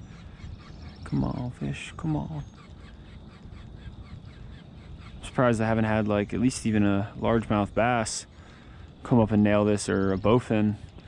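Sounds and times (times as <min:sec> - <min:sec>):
faint bird chirps: 0:00.0 - 0:11.0
steady low rumble: 0:00.0 - 0:11.0.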